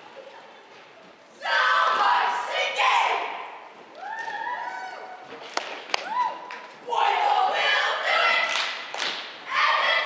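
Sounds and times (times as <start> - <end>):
cheerleaders shouting a cheer: 1.4 - 5.2, 6.0 - 8.8, 9.4 - 10.0.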